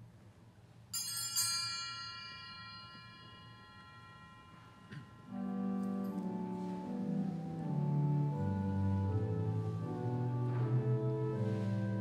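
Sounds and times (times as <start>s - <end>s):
altar bell ringing: 0.9s - 6.5s.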